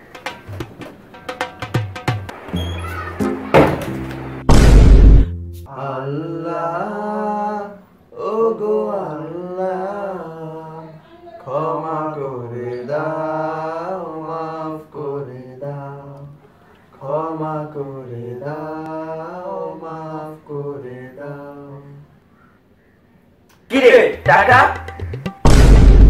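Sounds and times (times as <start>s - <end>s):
loud thud: 3.5s - 5.4s, 25.4s - 26.0s.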